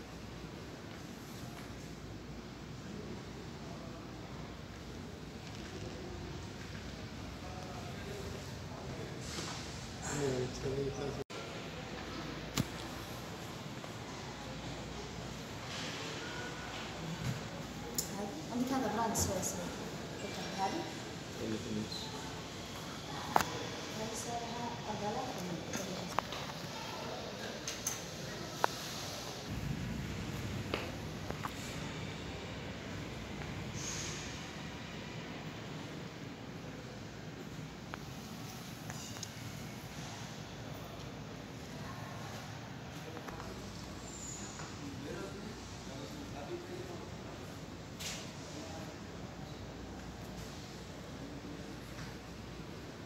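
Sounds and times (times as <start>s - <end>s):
faint indistinct voices: 0.0s - 53.0s
shopping mall background noise: 0.0s - 53.0s
brief hiss: 33.7s - 34.5s.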